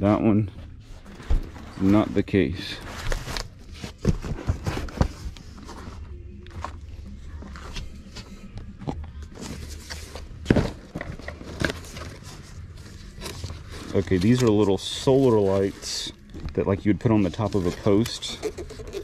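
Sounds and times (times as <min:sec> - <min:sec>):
cardboard boxes knocking and rustling: 0:03.0 - 0:05.8, 0:09.4 - 0:12.2.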